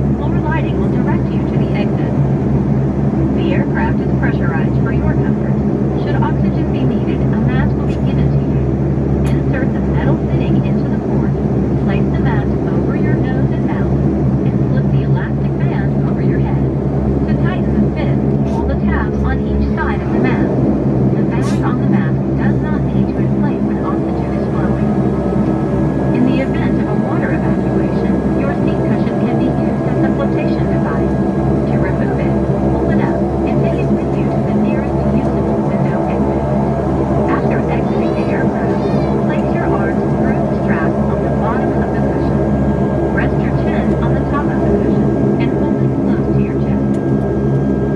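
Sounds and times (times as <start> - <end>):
turboprop engine drone: 0.0 - 47.9.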